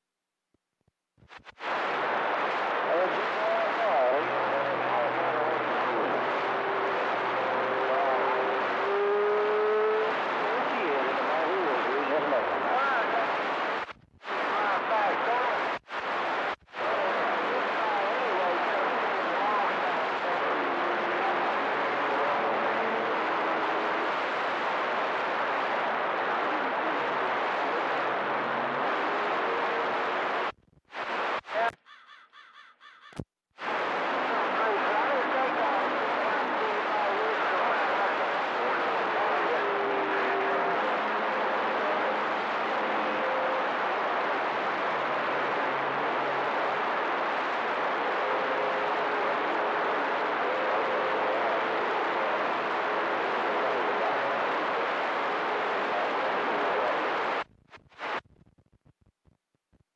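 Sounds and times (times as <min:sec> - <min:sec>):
radio static: 0:01.2 - 0:31.8, 0:33.6 - 0:58.7
faint garbled voices: 0:01.6 - 0:31.9, 0:33.6 - 0:58.2.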